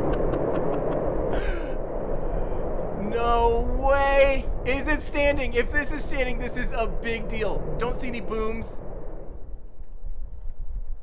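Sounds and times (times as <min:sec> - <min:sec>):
rocket rumble: 0:00.0 - 0:11.0.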